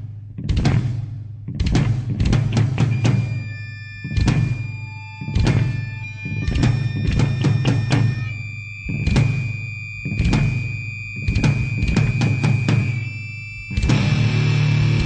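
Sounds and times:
heavy drum hits: 0.0s - 3.4s
high ringing tone: 2.8s - 15.0s.

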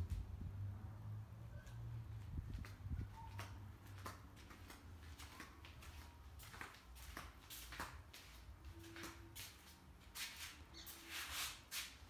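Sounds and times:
faint footsteps: 1.6s - 12.0s.

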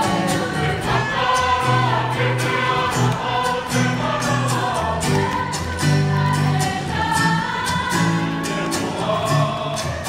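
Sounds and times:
group singing in chorus: 0.0s - 10.0s
guitar accompaniment: 0.0s - 10.0s.

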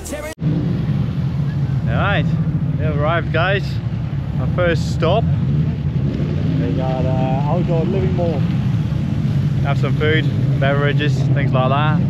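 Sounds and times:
person speaking: 0.0s - 0.4s
car engine and road noise: 0.0s - 12.0s.

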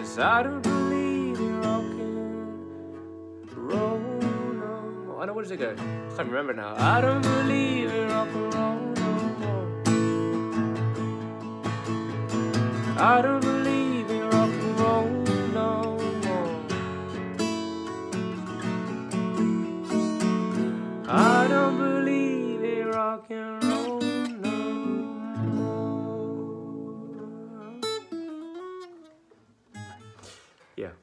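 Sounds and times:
man singing: 0.0s - 10.8s, 12.8s - 17.0s, 20.4s - 28.2s
acoustic guitar strummed: 0.0s - 30.6s.

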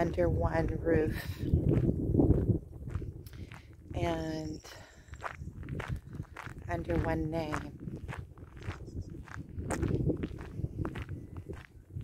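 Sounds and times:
wind buffeting microphone: 0.0s - 12.0s
footsteps on dirt path: 0.1s - 12.0s.

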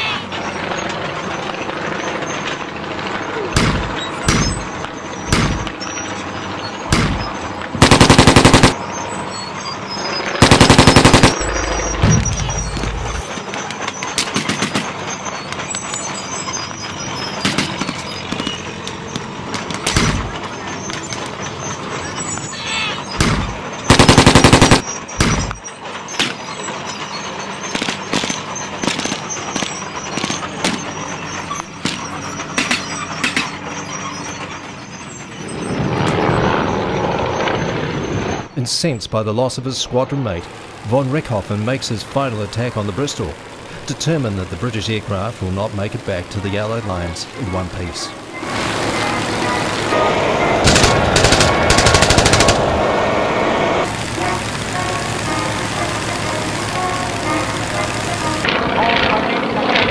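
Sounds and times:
biplane engine flying past: 0.0s - 25.6s, 28.7s - 59.9s
blank rifle shots: 3.6s - 4.6s, 5.3s - 5.7s, 6.9s - 8.8s, 10.4s - 13.3s, 23.2s - 25.6s, 48.3s - 52.9s
machine-gun fire bursts: 3.6s - 4.7s, 5.3s - 5.7s, 6.9s - 8.8s, 10.4s - 13.3s, 23.2s - 25.6s, 42.2s - 58.5s
low rumble: 10.3s - 13.4s.

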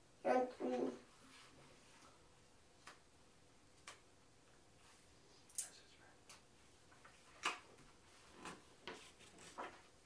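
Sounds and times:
book pages rustling and turning: 7.0s - 10.0s.

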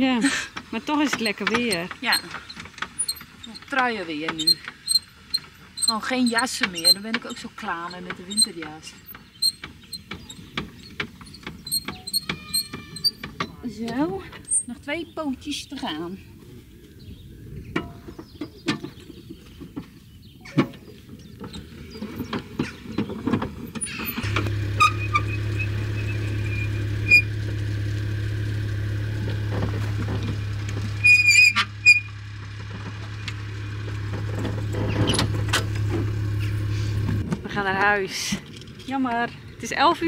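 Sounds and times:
caravan steadies clicking and knocking: 0.0s - 16.2s, 16.8s - 40.0s
short squeaks: 0.9s - 13.6s, 14.4s - 14.8s, 23.8s - 27.4s, 29.6s - 32.2s, 34.2s - 36.9s.

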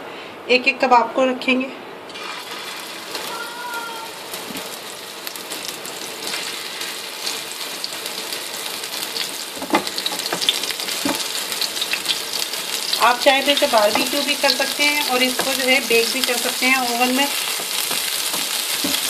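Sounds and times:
meat sizzling in hot oil: 2.1s - 19.0s.

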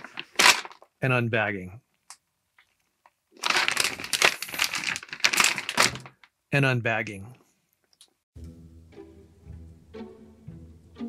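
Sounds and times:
foil bag crinkling: 0.0s - 0.9s, 3.3s - 6.3s.

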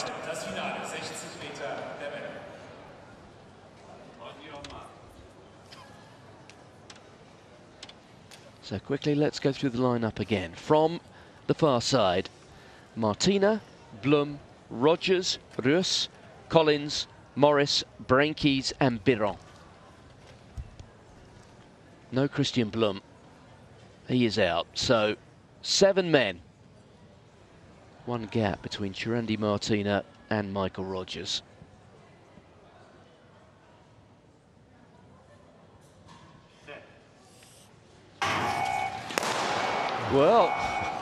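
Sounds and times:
start signal steady tone: 38.2s - 41.0s
recall gun crack: 39.1s - 40.0s.

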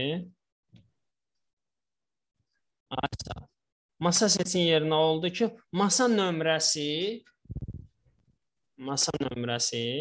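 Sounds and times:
man speaking: 2.9s - 7.4s, 8.8s - 10.0s.

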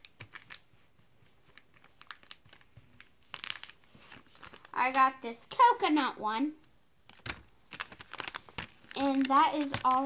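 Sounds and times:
plastic packaging crinkling: 0.0s - 5.6s, 7.0s - 10.0s.

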